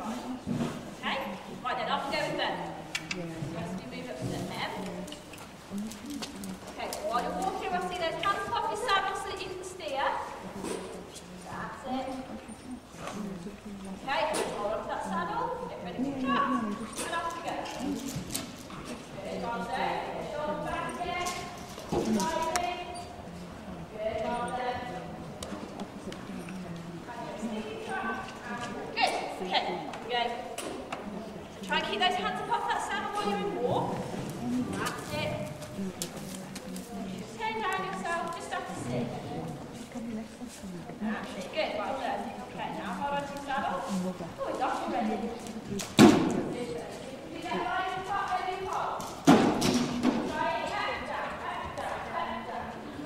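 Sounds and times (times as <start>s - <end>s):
indistinct voices: 2.4s - 49.2s.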